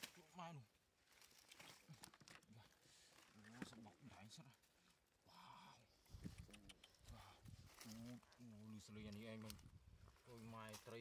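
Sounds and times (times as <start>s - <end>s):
hands rustling dry leaves: 0.0s - 3.9s.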